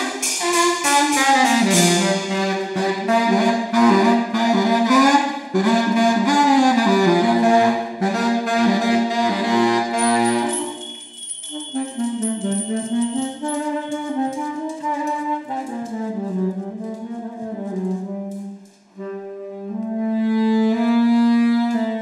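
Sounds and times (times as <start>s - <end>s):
baritone saxophone held notes: 0.0s - 10.8s, 11.7s - 22.0s.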